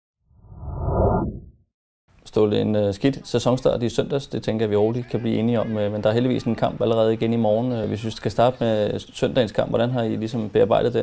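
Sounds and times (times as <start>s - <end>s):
low rushing whoosh: 0.3s - 1.6s.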